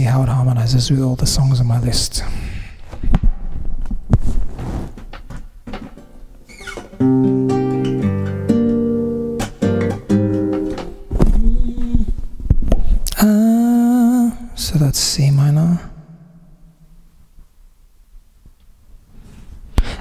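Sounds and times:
handling knocks and thumps: 3.0 - 7.0, 10.4 - 12.9
classical guitar strummed chords: 6.0 - 11.1.

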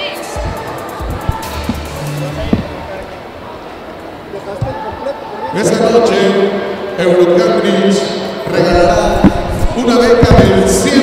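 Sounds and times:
dull low thumps: 0.4 - 3.4, 8.7 - 10.9
man talking: 4.4 - 11.0.

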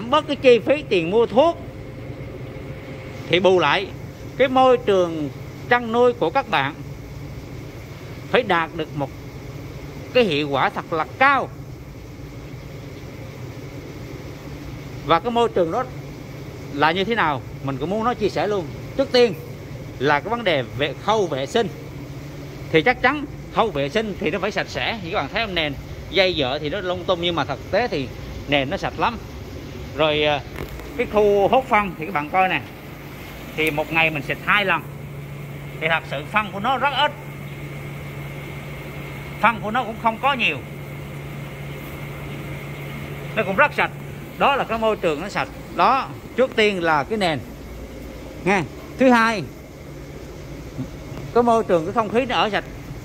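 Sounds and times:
ventilation fans humming and hissing: 0.0 - 53.0.

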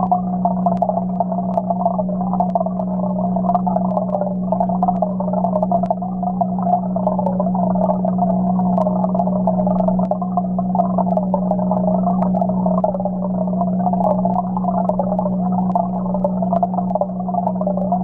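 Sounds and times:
water burbling: 0.0 - 18.0
water pump humming: 0.0 - 18.0.

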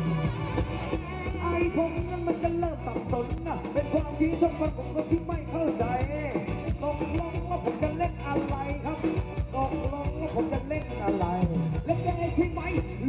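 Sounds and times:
live band playing dance music: 0.0 - 13.0
steady drum beat: 0.0 - 13.0.

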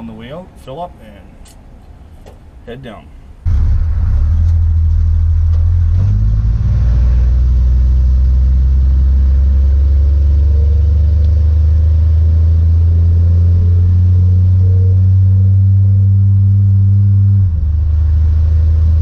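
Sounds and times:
car cabin engine drone: 3.4 - 19.0.

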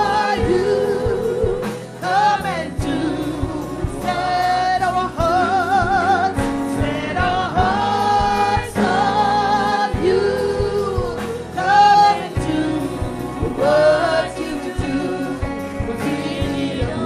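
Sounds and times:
group singing gospel song: 0.0 - 17.0
live band drums and keyboard: 0.0 - 17.0.

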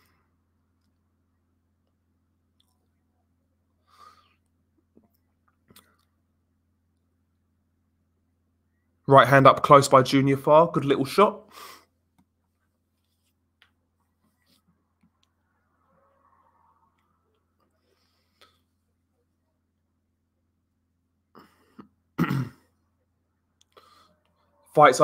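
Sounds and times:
faint low hum: 0.0 - 25.0
man clearing his throat: 21.4 - 22.7.

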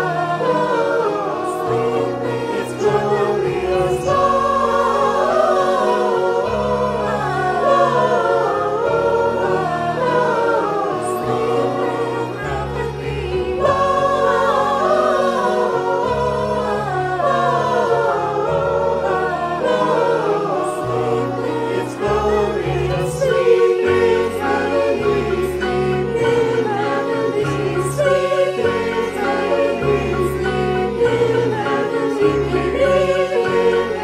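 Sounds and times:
mixed choir singing: 0.0 - 34.0
piano accompaniment: 0.0 - 34.0.

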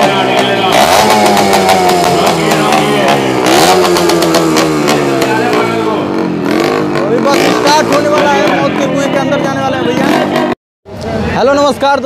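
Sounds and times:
motorcycle engine revving: 0.0 - 10.6.

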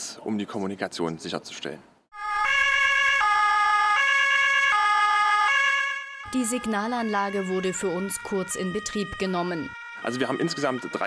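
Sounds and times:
two-tone siren: 2.1 - 11.0.

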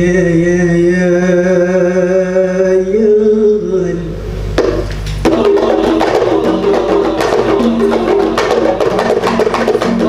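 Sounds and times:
frame drums beating quick rhythm: 5.2 - 10.0
held melody line: 5.3 - 10.0.

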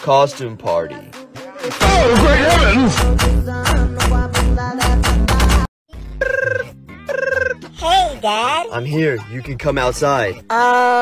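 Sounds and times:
music with heavy beat: 1.3 - 5.7
warbling phone ringtone: 6.2 - 7.6.

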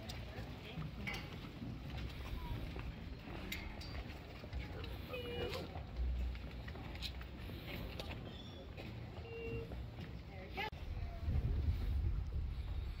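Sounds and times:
faint voices: 0.0 - 11.9
wind on microphone: 10.7 - 13.0.

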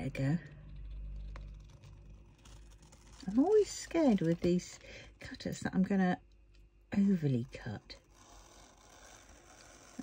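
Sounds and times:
cutter scratching plastic film: 1.0 - 4.8, 7.5 - 10.0.

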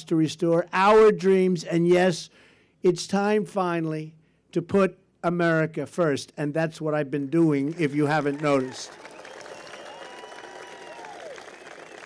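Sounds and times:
crowd applauding: 7.4 - 12.0.

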